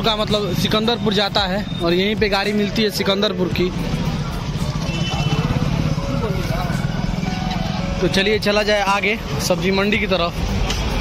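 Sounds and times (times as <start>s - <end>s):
busy street noise: 0.0s - 11.0s
vehicle engine running: 0.0s - 11.0s.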